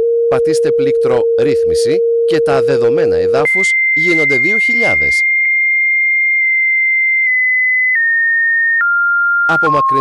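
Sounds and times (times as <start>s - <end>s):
metal detector high tone: 0.0s - 10.0s.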